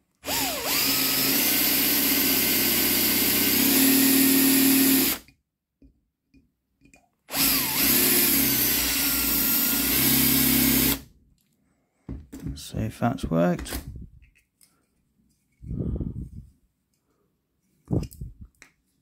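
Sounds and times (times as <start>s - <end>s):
power drill whining: 0.2s - 5.3s, 7.3s - 11.0s.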